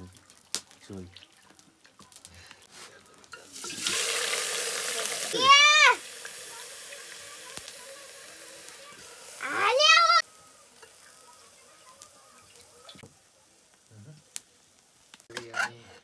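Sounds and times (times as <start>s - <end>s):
meat sizzling in a pot: 0.0s - 16.0s.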